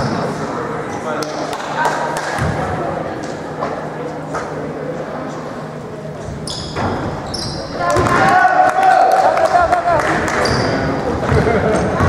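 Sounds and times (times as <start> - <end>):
spectators chattering: 0.0 - 12.0
short high squeaks: 6.4 - 7.8.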